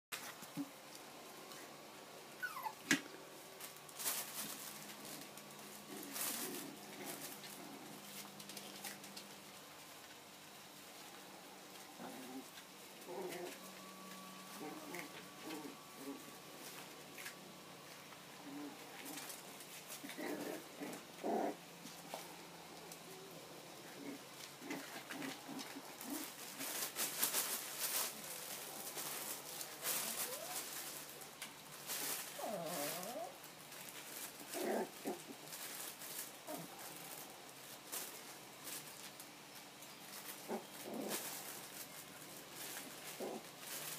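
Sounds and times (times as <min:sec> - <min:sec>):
puppies whimpering: 0:02.4 - 0:02.8
puppies grunting and squeaking: 0:02.4 - 0:03.1, 0:04.1 - 0:09.1, 0:14.4 - 0:17.3, 0:18.3 - 0:31.1, 0:31.9 - 0:33.4, 0:40.0 - 0:41.8
paws scrambling on pad: 0:24.0 - 0:43.9.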